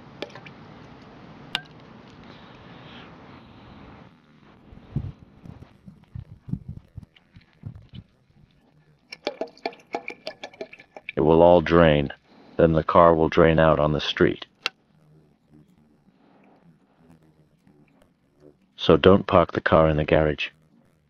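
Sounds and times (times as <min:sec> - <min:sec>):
oil pouring trickle: 0:09.1 - 0:11.2.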